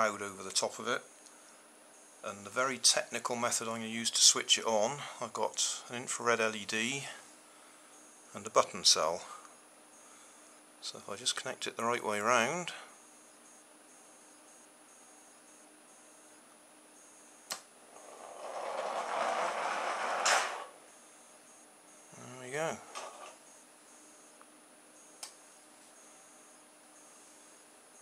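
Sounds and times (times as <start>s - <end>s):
click: 17.5s - 17.7s, 25.2s - 25.4s
toy car rolling on wooden floor: 18.0s - 20.7s.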